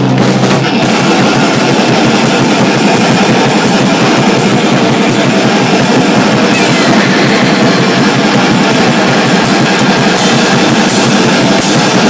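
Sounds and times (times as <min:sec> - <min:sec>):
drum kit: 0:00.0 - 0:12.0
fast cymbal hits: 0:00.0 - 0:12.0
electric guitar: 0:02.7 - 0:12.0.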